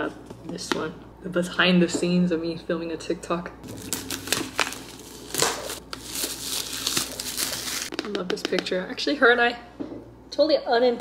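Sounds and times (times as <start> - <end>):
plastic shrink wrap crinkling: 3.6 - 8.2.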